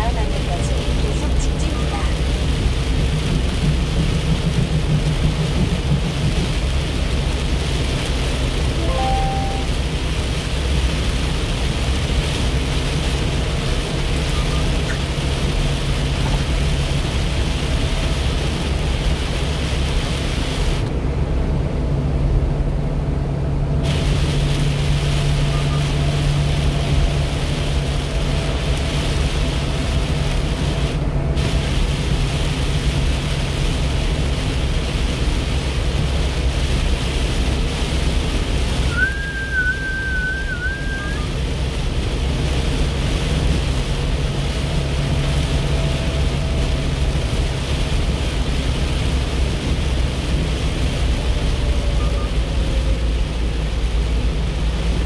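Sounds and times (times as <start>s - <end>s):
rain hissing on windshield: 0.0s - 22.5s, 23.4s - 55.0s
engine and tyre rumble: 0.0s - 55.0s.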